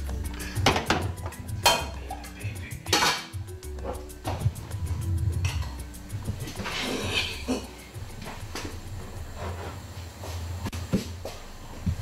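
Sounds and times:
background music: 0.0 - 9.7
metal cooking pot clattering: 0.6 - 2.1, 2.9 - 3.3.

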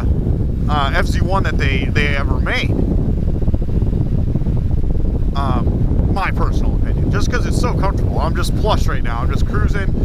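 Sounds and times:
wind rush on microphone: 0.0 - 10.0.

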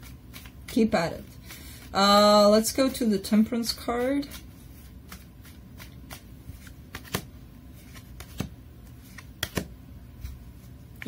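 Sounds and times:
cards being shuffled: 0.0 - 3.0, 3.6 - 11.0.

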